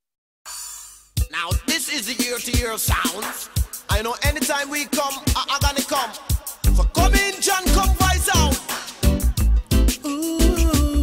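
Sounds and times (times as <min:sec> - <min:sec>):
deejay toasting: 0:01.2 - 0:11.0
steady kick drum: 0:02.4 - 0:04.5.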